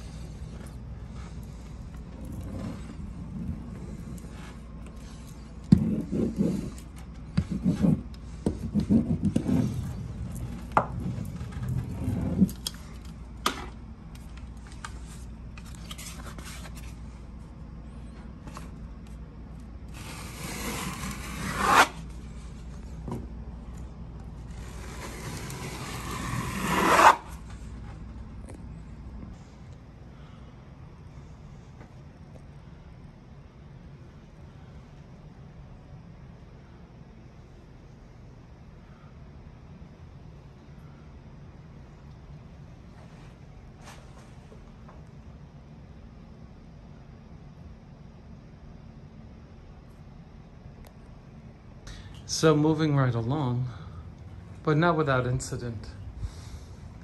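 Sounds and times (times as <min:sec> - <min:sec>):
seam roller rubbing and scraping: 0:00.0 - 0:12.8, 0:19.9 - 0:22.7, 0:24.4 - 0:27.6.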